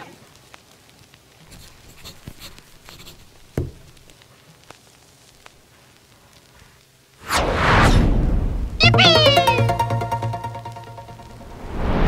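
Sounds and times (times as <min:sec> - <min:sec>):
whoosh: 0:07.2 - 0:08.8, 0:11.2 - 0:12.0
bright tone sliding down: 0:08.8 - 0:12.0.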